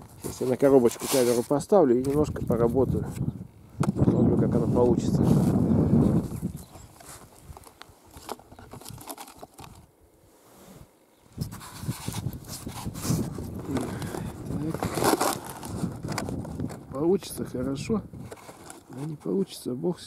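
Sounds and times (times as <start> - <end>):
snow shovel scraping: 0.2 - 1.6, 10.3 - 16.0
camera handling rustling and clicks: 6.4 - 9.9, 11.4 - 16.9, 18.2 - 19.1.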